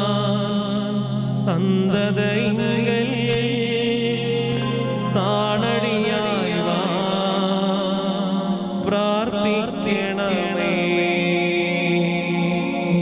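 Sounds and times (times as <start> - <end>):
person chanting with pitch glides: 0.0 - 13.0
low sustained drone: 1.5 - 13.0.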